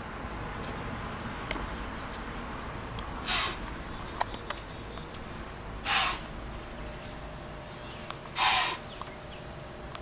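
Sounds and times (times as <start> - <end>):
deer snorting: 3.2 - 3.6, 5.8 - 6.3, 8.4 - 8.9.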